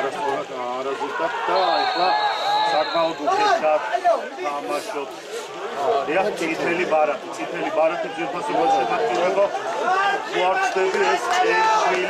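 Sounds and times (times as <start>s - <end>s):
referee's whistle blast: 1.5s - 3.4s.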